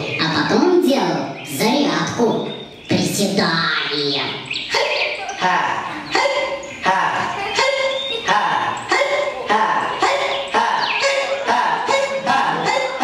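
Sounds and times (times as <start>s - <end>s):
man imitating dog barking: 4.7s - 13.0s.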